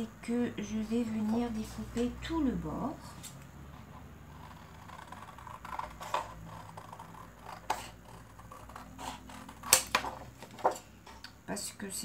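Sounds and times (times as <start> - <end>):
scissors cutting paper: 4.3 - 10.7.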